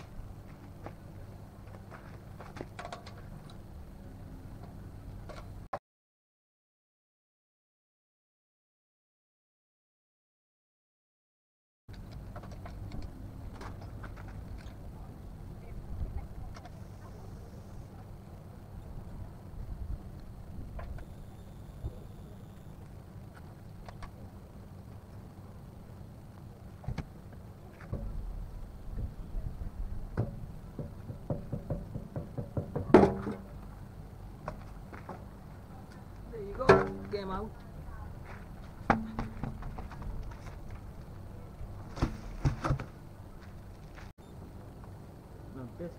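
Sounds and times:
low outdoor rumble: 0:00.0 - 0:05.7, 0:11.9 - 0:45.9.

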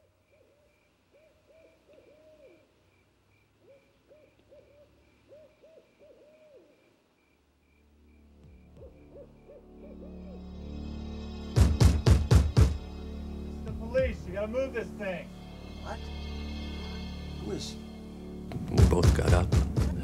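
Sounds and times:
owl hooting: 0:00.0 - 0:07.4, 0:08.4 - 0:10.9.

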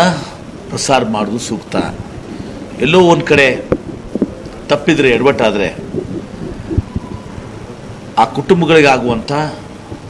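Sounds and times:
low background rumble: 0:02.0 - 0:08.2
microphone handling thumps: 0:03.7 - 0:04.6, 0:05.7 - 0:07.3.

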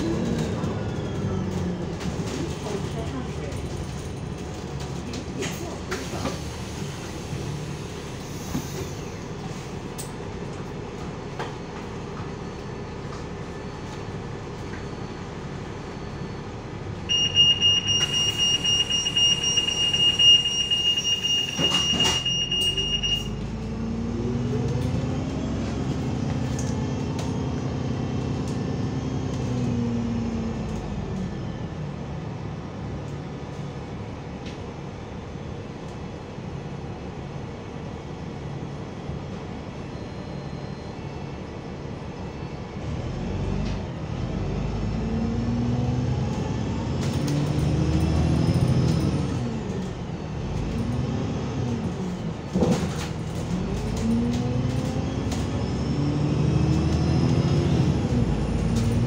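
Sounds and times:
bus engine pulling away: 0:00.0 - 0:59.0
high-pitched door warning beep: 0:17.1 - 0:23.4.

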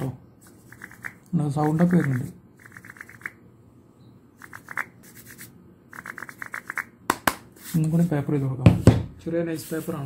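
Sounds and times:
fingers scratching wooden block: 0:00.7 - 0:03.4, 0:04.4 - 0:06.9.

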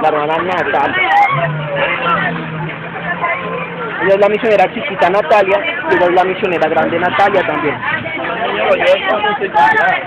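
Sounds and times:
soft voices chattering: 0:00.0 - 0:10.0
vehicle engine idling: 0:00.0 - 0:10.0.

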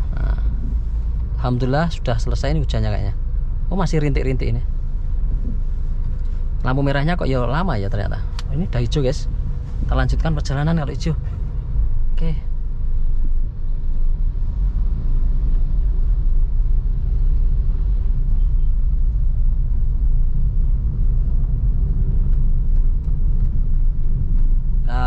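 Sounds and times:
car engine and tyres rumbling: 0:00.0 - 0:25.0.

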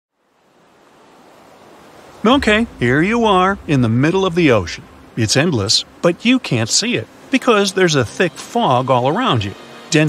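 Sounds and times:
ocean waves washing: 0:00.2 - 0:10.0.

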